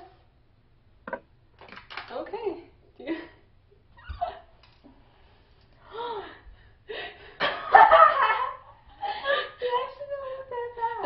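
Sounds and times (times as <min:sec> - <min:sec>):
women laughing: 0:07.4 - 0:11.0.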